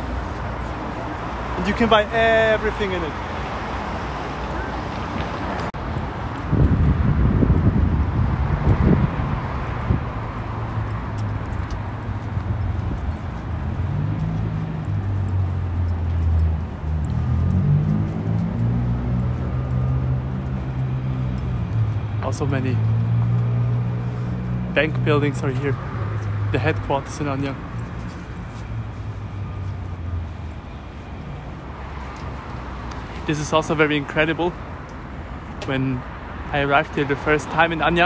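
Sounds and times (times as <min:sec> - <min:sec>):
street traffic: 0:00.0 - 0:38.0.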